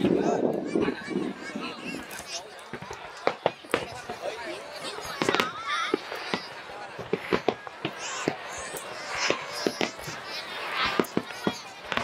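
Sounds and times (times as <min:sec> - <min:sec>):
crowd voices and exclamations: 0:00.0 - 0:12.0
fireworks bangs and crackles: 0:00.0 - 0:12.0.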